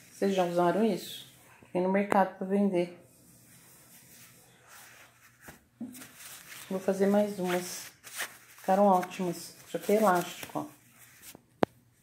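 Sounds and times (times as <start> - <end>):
fabric rustling: 3.1 - 11.5.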